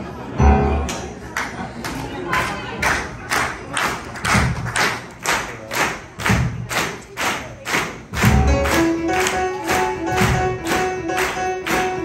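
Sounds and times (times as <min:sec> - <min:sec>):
piano chord: 0:00.4 - 0:01.1
sharp percussive beats: 0:05.8 - 0:07.0, 0:07.7 - 0:12.0.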